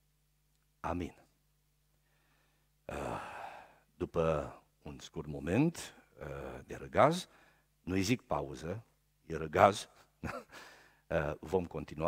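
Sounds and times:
man sighing: 0:02.9 - 0:03.8.

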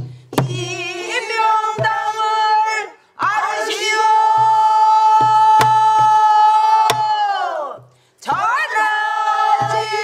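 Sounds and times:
singers holding a long note: 0:00.5 - 0:10.0.

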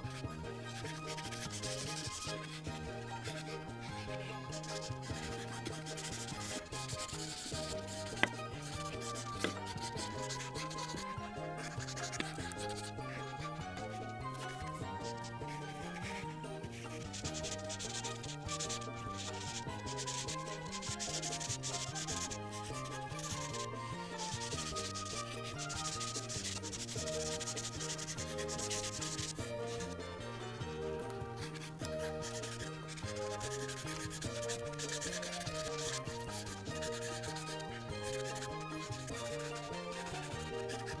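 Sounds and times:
marker rubbing across paper: 0:00.0 - 0:41.0
soft background music: 0:00.0 - 0:41.0.

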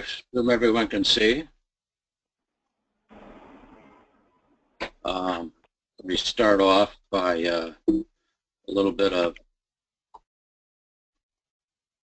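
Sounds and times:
burst of rushing noise: 0:03.1 - 0:04.4
person speaking: 0:04.8 - 0:08.0.

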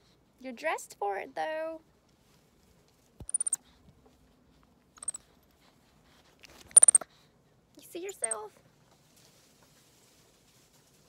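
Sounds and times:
monkey high-pitched chirps: 0:03.2 - 0:03.6, 0:05.0 - 0:05.2, 0:06.7 - 0:07.0, 0:08.1 - 0:08.5.

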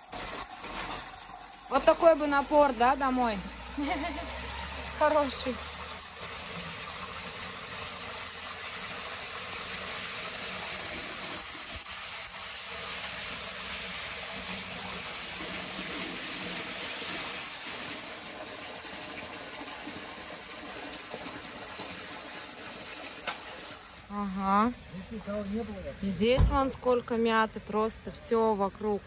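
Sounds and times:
water filling a plastic bottle: 0:00.0 - 0:24.2
water splashing into a pool: 0:00.0 - 0:24.2
water pouring from a pipe: 0:00.0 - 0:26.2.

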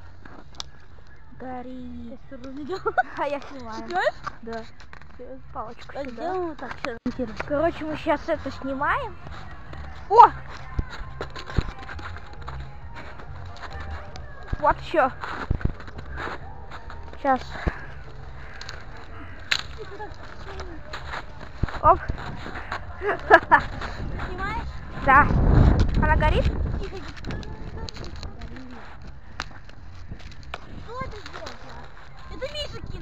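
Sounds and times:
children talking and calling: 0:00.0 - 0:33.0
steady low rumble: 0:01.5 - 0:33.0.

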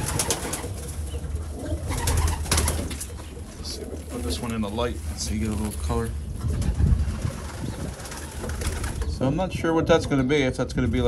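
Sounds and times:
pigeons cooing: 0:00.0 - 0:09.2
steady low rumble: 0:00.0 - 0:11.0.

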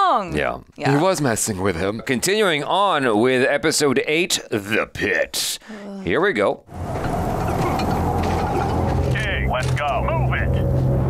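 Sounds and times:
steady low rumble: 0:06.7 - 0:11.0.

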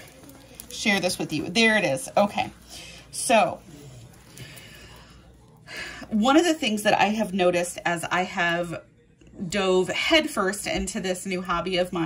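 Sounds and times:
woman speaking: 0:00.0 - 0:04.0, 0:05.8 - 0:12.0
faint breathing: 0:02.6 - 0:06.1.

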